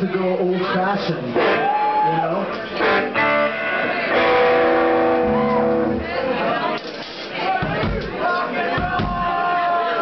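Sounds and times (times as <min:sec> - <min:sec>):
electric guitar chord ringing: 0:02.9 - 0:06.1.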